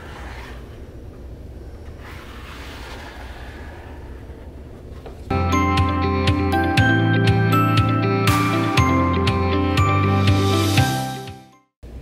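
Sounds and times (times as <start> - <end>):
plastic spreader scraping wood: 0.0 - 0.9, 2.0 - 4.2
low room rumble: 0.0 - 6.4.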